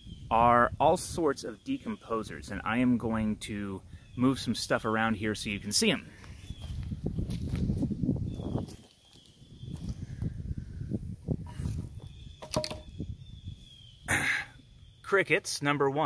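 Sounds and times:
microphone handling rumble: 6.5s - 8.8s, 9.6s - 13.7s
wooden boards scraping on soil: 11.4s - 12.9s
sharp wooden knocks: 12.4s - 12.9s.

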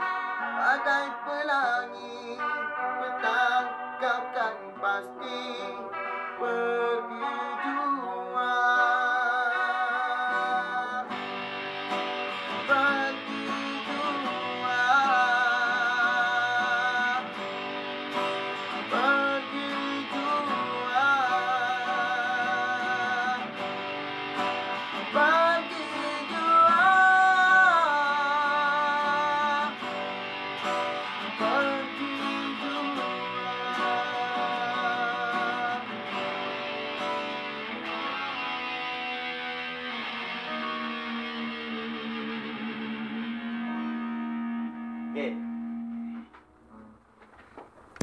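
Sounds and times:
man singing: 0.0s - 11.3s, 12.5s - 23.9s, 25.0s - 30.1s, 31.2s - 36.6s
electric guitar playing: 0.0s - 47.0s
acoustic guitar strumming: 0.0s - 48.0s.

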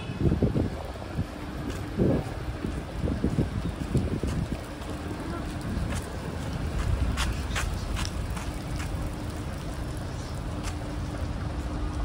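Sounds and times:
city street traffic rumble: 0.0s - 12.0s
wind buffeting microphone: 0.0s - 12.0s.

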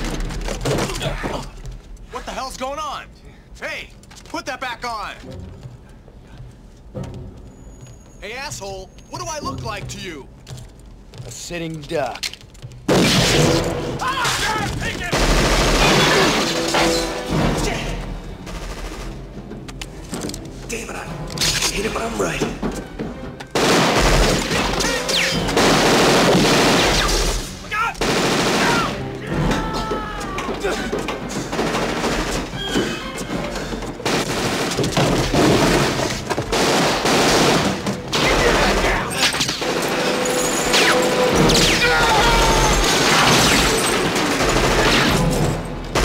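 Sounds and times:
gunfire: 15.0s - 17.3s, 23.5s - 29.2s, 34.0s - 41.9s, 42.7s - 46.0s.

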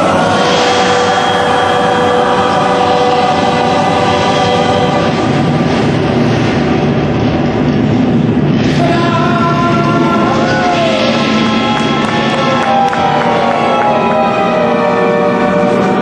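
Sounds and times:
hissing rumbling smoke bursts: 0.0s - 14.7s
low rumble: 0.0s - 16.0s
sustained horn-like tones: 0.0s - 16.0s.

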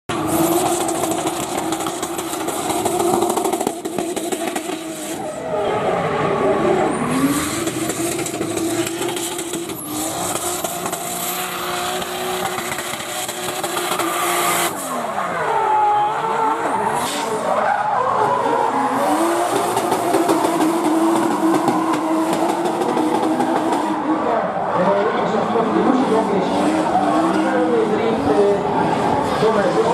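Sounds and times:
car engine revving hard: 0.1s - 29.9s.

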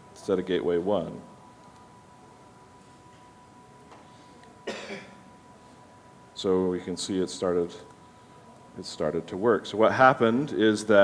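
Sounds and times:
man clearing his throat: 4.6s - 5.2s.

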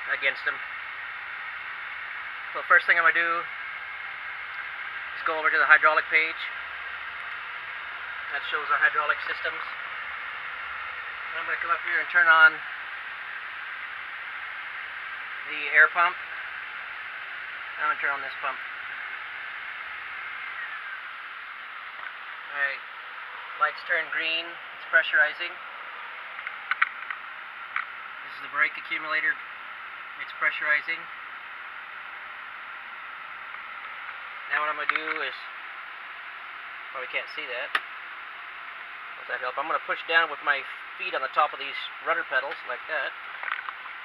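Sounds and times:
cockpit background hiss: 0.0s - 44.0s.

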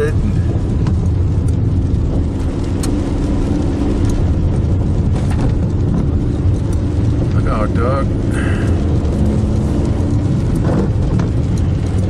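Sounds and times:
car engine and tyre noise: 0.0s - 12.0s.

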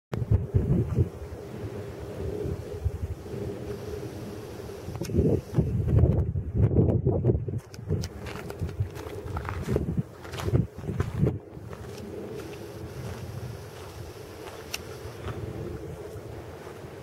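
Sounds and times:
wind buffeting microphone: 0.1s - 17.0s.

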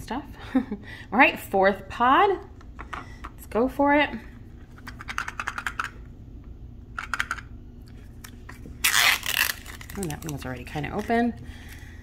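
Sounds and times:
toy capsule rattling: 4.8s - 6.0s
plastic wrapper tearing: 8.8s - 11.1s.

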